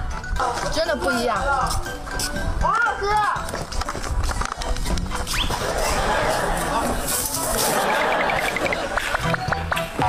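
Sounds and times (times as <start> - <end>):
fast squeaky chattering: 7.8 - 9.0.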